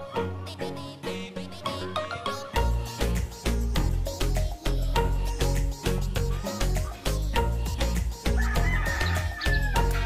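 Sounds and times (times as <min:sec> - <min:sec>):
background music with steady beat: 0:00.0 - 0:10.0
rooster crowing: 0:08.4 - 0:10.0.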